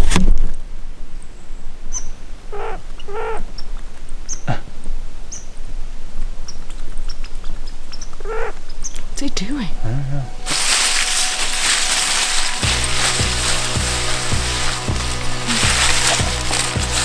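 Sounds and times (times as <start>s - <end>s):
loud rustling bump: 10.5s - 17.0s.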